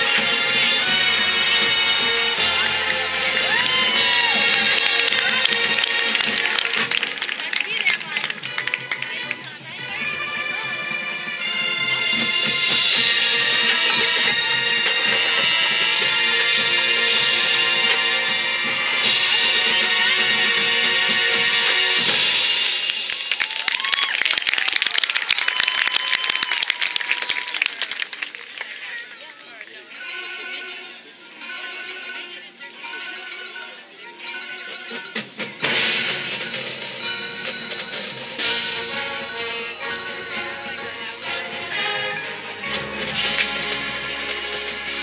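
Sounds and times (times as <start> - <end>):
audience cheering: 0.0 - 9.4, 22.0 - 29.5
marching band chord: 0.0 - 23.2, 35.2 - 45.0
audience applause: 0.8 - 10.8, 11.9 - 18.2, 22.0 - 29.8
sharp percussion strikes: 11.4 - 23.4, 30.0 - 45.0.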